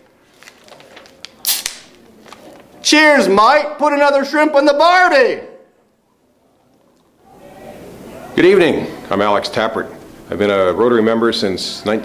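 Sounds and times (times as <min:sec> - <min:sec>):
beer can cracked open: 0:01.2 - 0:02.4.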